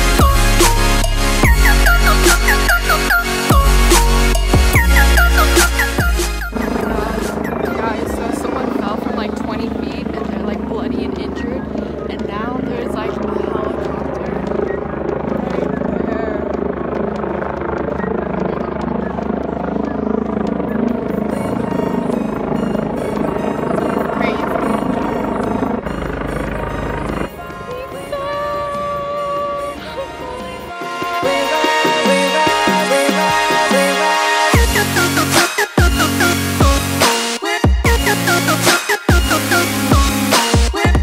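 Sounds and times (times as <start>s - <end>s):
helicopter rotor chopping: 0.0s - 41.0s
music: 0.0s - 41.0s
people's voices: 6.7s - 34.1s.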